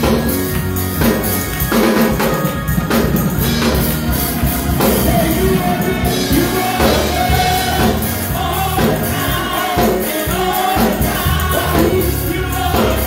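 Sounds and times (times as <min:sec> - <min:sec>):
group singing gospel: 0:00.0 - 0:13.0
instrumental backing with beat: 0:00.0 - 0:13.0.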